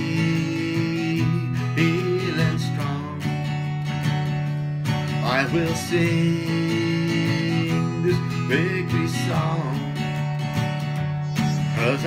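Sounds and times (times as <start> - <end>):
person singing: 0.0 - 3.4, 4.9 - 12.0
acoustic guitar strumming: 0.0 - 12.0.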